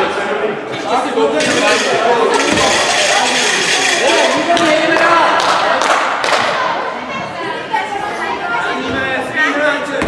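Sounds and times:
voices calling and chattering: 0:00.0 - 0:10.0
thud: 0:02.4 - 0:03.0.

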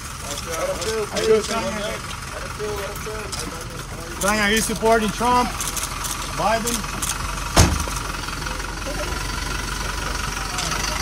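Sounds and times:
truck engine running: 0:00.0 - 0:11.0
sharp thump: 0:07.5 - 0:08.0.

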